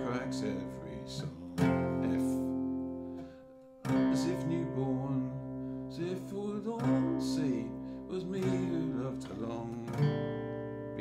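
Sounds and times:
acoustic guitar chords strummed: 0:00.0 - 0:11.0.

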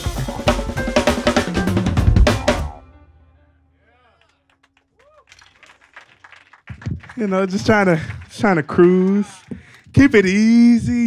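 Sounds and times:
scattered hand-clapping: 0:04.2 - 0:10.2
man speaking: 0:07.1 - 0:11.0.

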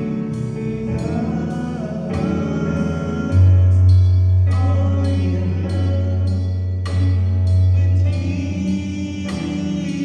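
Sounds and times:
deep bass note: 0:00.0 - 0:10.0
keyboard chords: 0:00.0 - 0:10.0.

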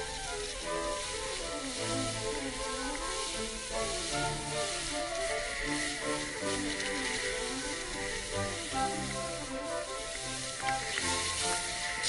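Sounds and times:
background music: 0:00.0 - 0:12.0
skis hissing on snow: 0:00.0 - 0:12.0.

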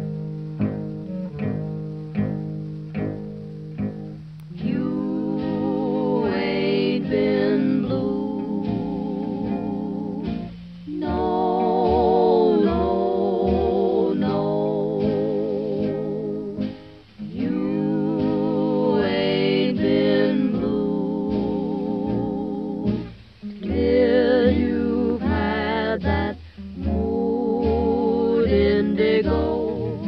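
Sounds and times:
jazz melody with heavy vibrato: 0:00.0 - 0:30.0
plucked guitar accompaniment: 0:00.0 - 0:30.0.

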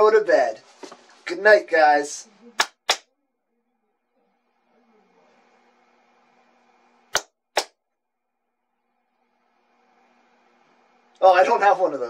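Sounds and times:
sharp hand claps: 0:02.6 - 0:03.1, 0:07.1 - 0:07.8.

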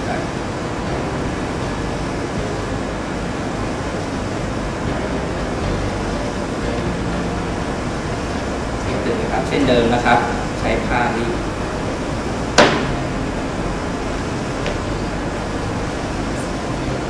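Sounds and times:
steady rushing noise: 0:00.0 - 0:17.0.

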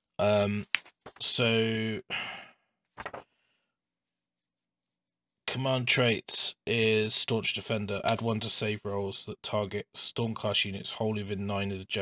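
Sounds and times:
person sighing: 0:02.1 - 0:02.6.

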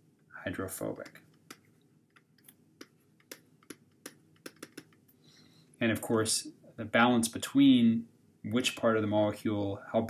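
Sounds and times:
stylus tapping on tablet: 0:01.0 - 0:05.0.

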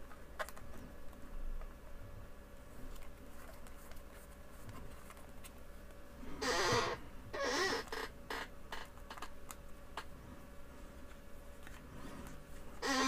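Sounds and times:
squeaky plastic scrapes: 0:06.4 - 0:09.3, 0:12.8 - 0:13.0.

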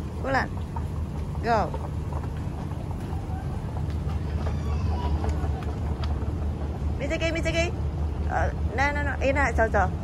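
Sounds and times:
moving walkway rumbling: 0:00.0 - 0:10.0.

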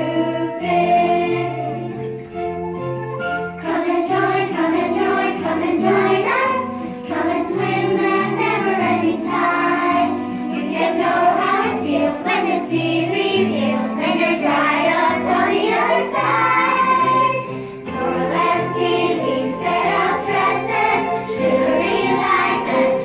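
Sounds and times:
choir singing: 0:00.0 - 0:02.1, 0:03.6 - 0:23.0.

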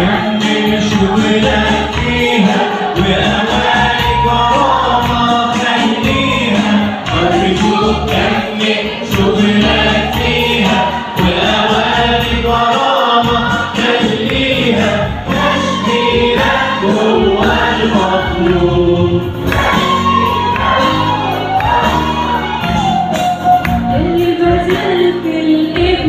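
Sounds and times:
mixed choir singing a hymn: 0:00.0 - 0:26.0.

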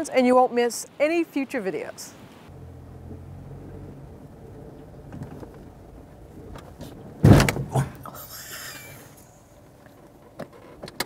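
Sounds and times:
car running noise inside cabin: 0:02.5 - 0:08.2
loud thumps: 0:06.8 - 0:08.0.

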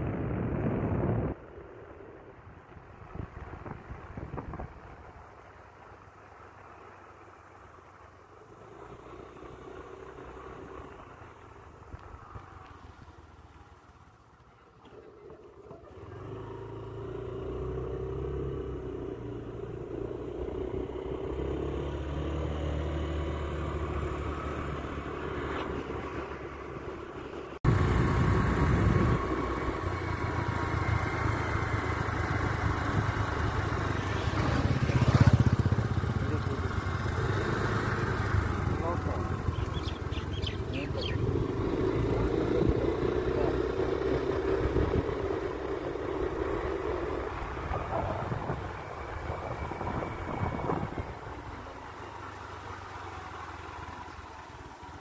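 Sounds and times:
wind noise on microphone: 0:00.0 - 0:01.7, 0:02.4 - 0:05.0, 0:27.6 - 0:29.6, 0:47.7 - 0:51.4
motorbike engine running: 0:27.6 - 0:51.3.

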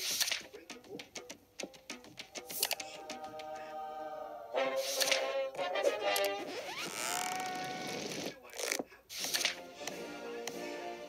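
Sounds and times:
sharp clicks: 0:00.0 - 0:00.6, 0:01.6 - 0:02.9
television music: 0:00.0 - 0:11.0.

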